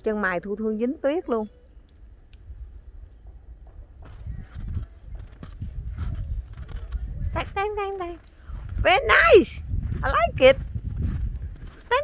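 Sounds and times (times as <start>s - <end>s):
wind buffeting microphone: 1.9s - 12.0s.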